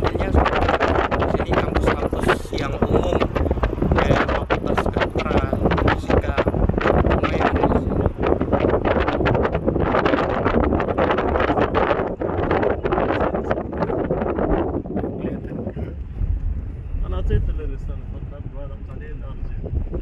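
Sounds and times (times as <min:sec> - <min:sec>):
car road noise: 0:00.0 - 0:20.0
wind buffeting microphone: 0:00.0 - 0:20.0.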